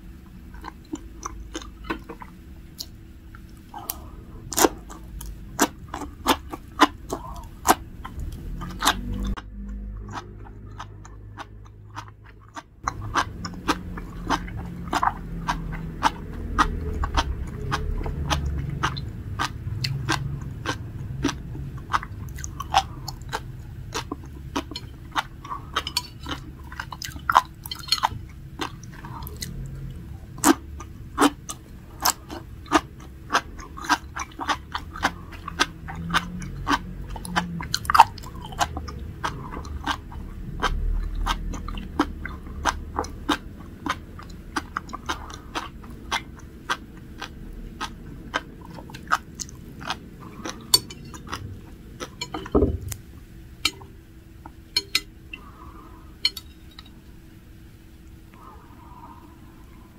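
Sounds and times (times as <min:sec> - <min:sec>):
chewing seaweed: 0:00.3 - 0:53.9.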